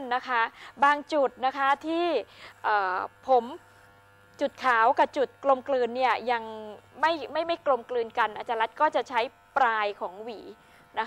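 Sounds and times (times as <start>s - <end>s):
electric hair clipper humming: 0.0s - 11.0s.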